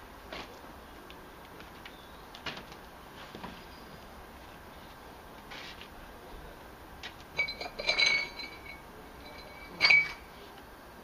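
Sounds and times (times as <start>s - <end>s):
hard objects clinking: 7.4s - 10.3s
high ringing: 7.4s - 10.3s.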